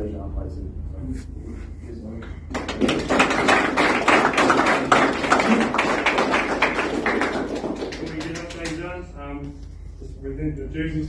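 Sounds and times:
crowd applauding: 0:02.5 - 0:08.9.

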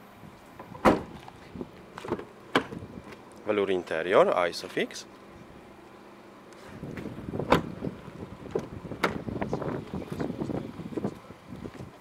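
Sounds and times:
wind and handling rumble on microphone: 0:00.2 - 0:03.5, 0:06.6 - 0:12.0.

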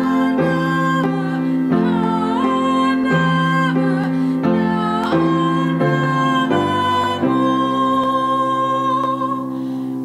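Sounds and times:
grand piano chord: 0:00.0 - 0:10.0
person singing a long note: 0:00.0 - 0:10.0.

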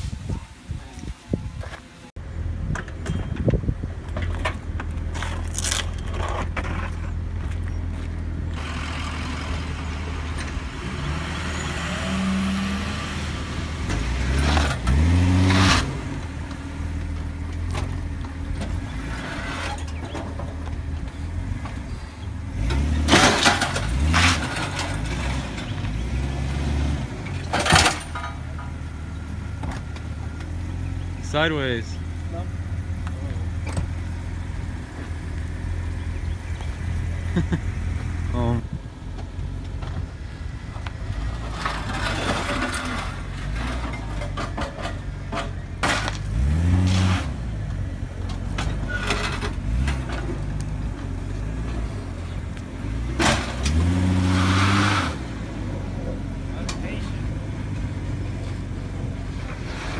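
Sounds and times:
engine idling and revving: 0:02.1 - 0:59.9.

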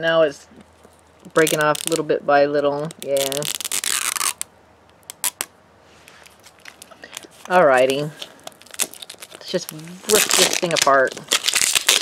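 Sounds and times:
plastic wrapping crinkling and tearing: 0:00.9 - 0:02.1, 0:02.8 - 0:12.0
faint rustling: 0:05.8 - 0:12.0.

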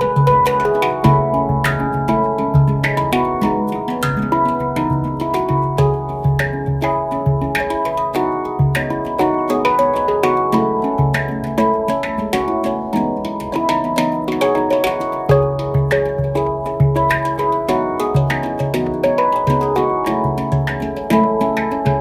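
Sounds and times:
handpan notes: 0:00.0 - 0:22.0
low bass handpan note: 0:00.0 - 0:22.0.

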